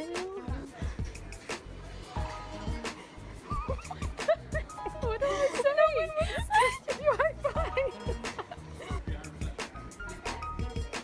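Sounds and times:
music with kick-drum beat: 0:00.0 - 0:11.0.

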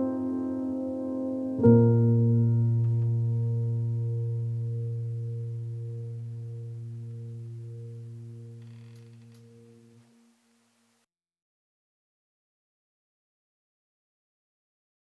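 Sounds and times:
low piano chord ringing: 0:00.0 - 0:10.0.

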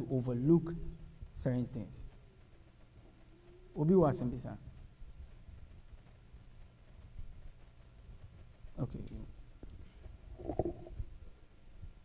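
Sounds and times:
low rumble of room noise: 0:00.0 - 0:12.0.

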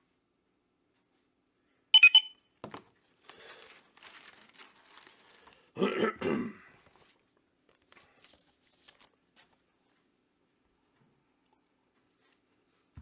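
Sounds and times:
man clearing his throat: 0:05.8 - 0:06.8.

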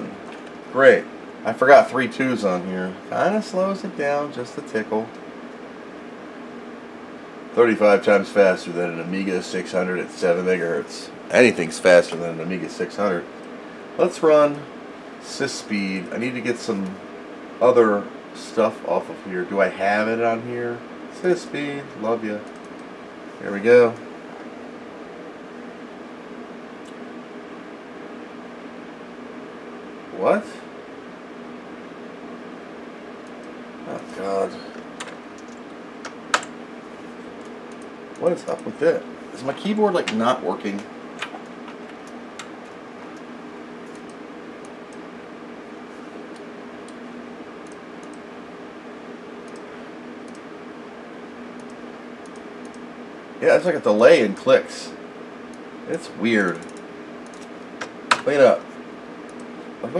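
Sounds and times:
computer cooling fans humming: 0:00.0 - 0:59.9.

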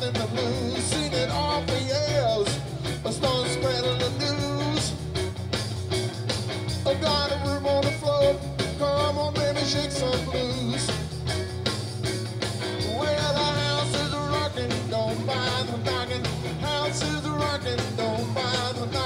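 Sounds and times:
bending guitar melody: 0:00.0 - 0:19.0
blues-rock band playing: 0:00.0 - 0:19.0.

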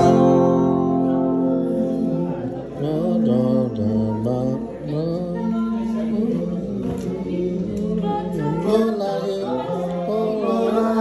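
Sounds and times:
group singing unaccompanied: 0:00.0 - 0:11.0.

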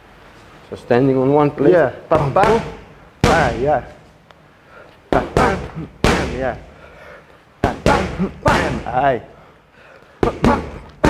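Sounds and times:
fighter shouting: 0:02.1 - 0:03.9, 0:05.2 - 0:06.7, 0:07.6 - 0:09.3, 0:10.2 - 0:11.0
gloves smacking focus mitts: 0:02.1 - 0:04.0, 0:07.6 - 0:09.0.

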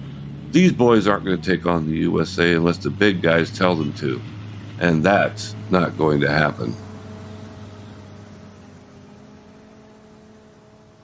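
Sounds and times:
low drone with held tones: 0:00.0 - 0:11.0.

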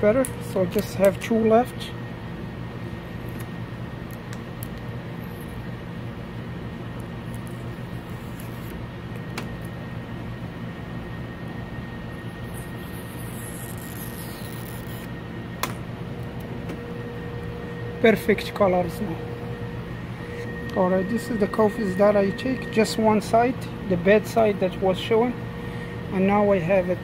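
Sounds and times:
low electrical hum: 0:00.0 - 0:27.0.

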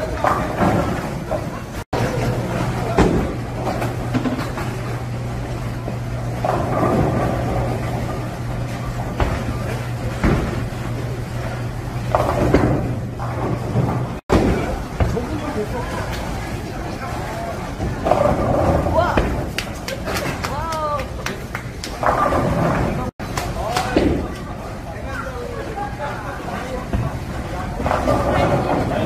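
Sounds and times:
bowling pins crashing: 0:00.0 - 0:05.0, 0:06.3 - 0:16.1, 0:17.7 - 0:20.5, 0:21.9 - 0:24.4
bowling ball rolling: 0:00.0 - 0:20.5, 0:21.1 - 0:23.1, 0:26.4 - 0:29.0
low machine hum and rumble: 0:00.0 - 0:29.0.

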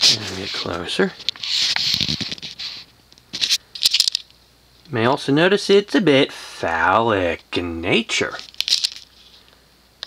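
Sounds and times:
rattling handling noise: 0:08.4 - 0:09.1.

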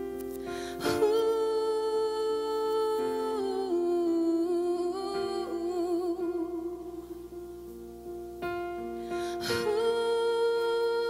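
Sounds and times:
soft musical accompaniment: 0:00.0 - 0:11.0
woman singing wordless melody: 0:00.5 - 0:07.8, 0:09.1 - 0:11.0.

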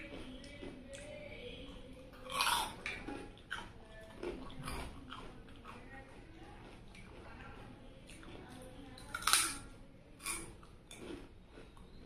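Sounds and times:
person chewing and biting food: 0:01.8 - 0:08.5, 0:10.2 - 0:12.0.

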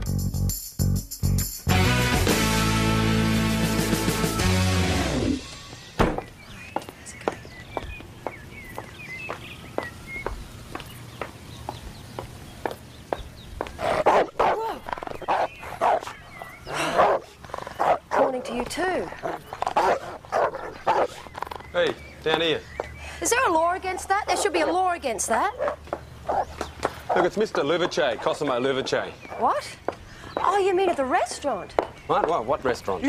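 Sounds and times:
dog barking loudly: 0:13.8 - 0:14.6, 0:15.3 - 0:16.1, 0:16.8 - 0:18.6, 0:19.2 - 0:21.2, 0:25.5 - 0:29.6.

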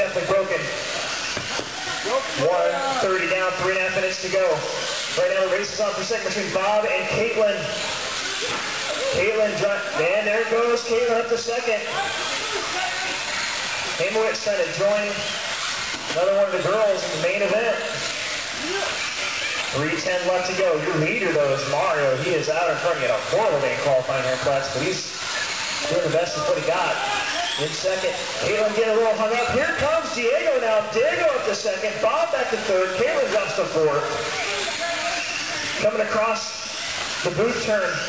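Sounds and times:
electric model cars racing: 0:00.0 - 0:38.0
motor whine: 0:00.0 - 0:38.0.

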